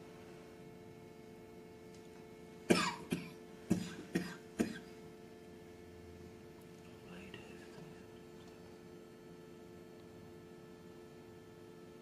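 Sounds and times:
faint steady hum: 0:00.0 - 0:12.0
person coughing: 0:02.7 - 0:05.0.

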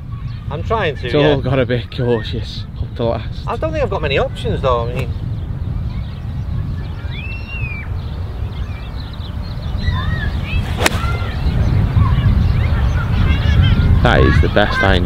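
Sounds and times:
wind noise on microphone: 0:00.0 - 0:15.0
golf club striking ball: 0:10.6 - 0:11.4.

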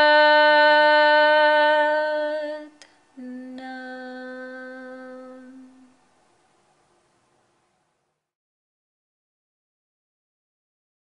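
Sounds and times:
voice holding long hummed note: 0:00.0 - 0:06.0.

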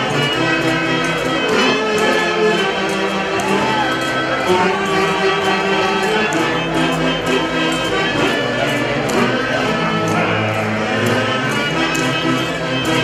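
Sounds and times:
wind and string dance music: 0:00.0 - 0:13.0.

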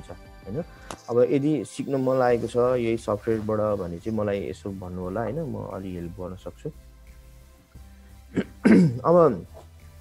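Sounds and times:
man clearing throat: 0:08.3 - 0:09.1.

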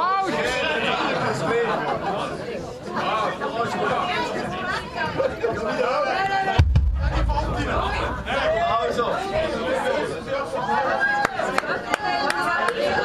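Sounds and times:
people talking over one another: 0:00.0 - 0:13.0.

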